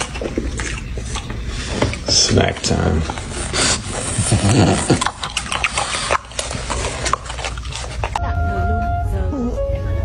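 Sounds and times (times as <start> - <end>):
dog chewing food: 0.0 - 8.2.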